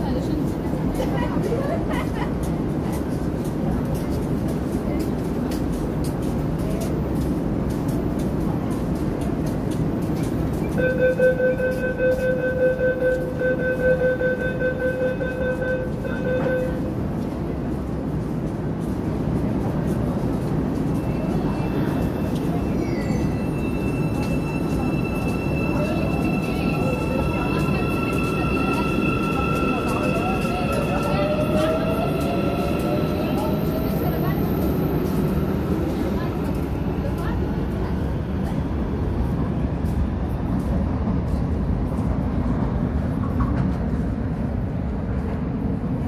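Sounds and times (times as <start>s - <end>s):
train and station rumble: 0.0s - 46.0s
pulsing door warning tone: 22.8s - 35.6s.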